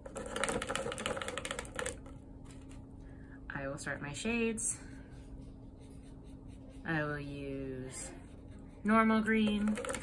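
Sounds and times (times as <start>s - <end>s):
paintbrush rattling in water cup: 0.0s - 2.8s, 9.3s - 10.0s.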